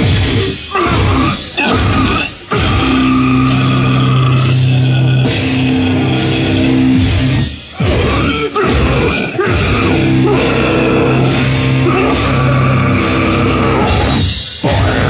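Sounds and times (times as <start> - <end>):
death metal band playing live: 0.0 - 15.0.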